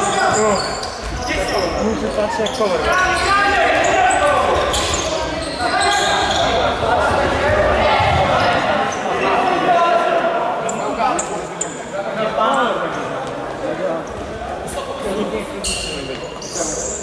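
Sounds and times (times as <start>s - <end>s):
people shouting in echoing hall: 0.0s - 11.1s.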